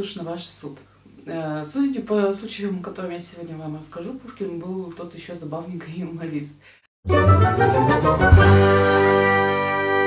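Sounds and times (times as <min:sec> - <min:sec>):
bright chime-like chord: 0:08.3 - 0:10.0.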